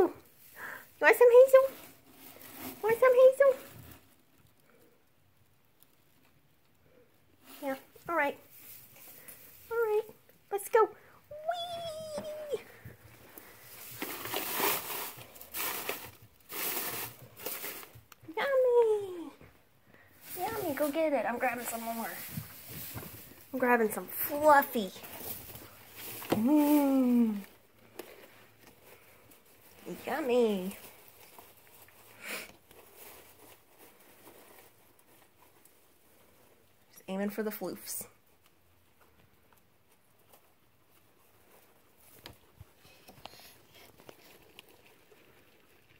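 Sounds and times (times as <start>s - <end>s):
guinea pigs rustling hay: 0.0s - 19.4s, 20.0s - 45.9s
dry hay rustling and crackling: 20.0s - 27.4s, 29.0s - 32.3s
guinea pigs chewing hay: 20.0s - 45.9s.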